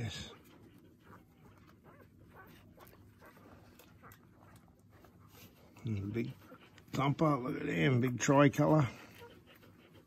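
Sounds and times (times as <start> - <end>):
puppies squeaking and whimpering: 0.0 - 10.0.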